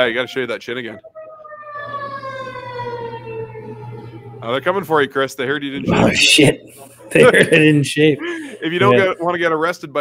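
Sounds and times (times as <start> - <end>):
siren wailing: 0.0 - 6.7.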